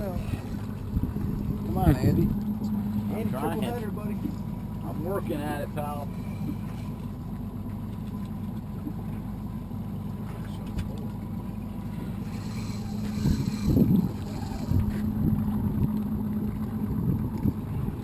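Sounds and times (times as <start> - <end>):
outboard motor idling: 0.0 - 18.0.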